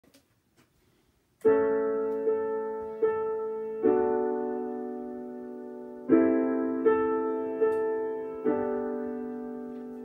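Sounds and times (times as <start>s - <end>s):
piano chords: 1.4s - 10.0s.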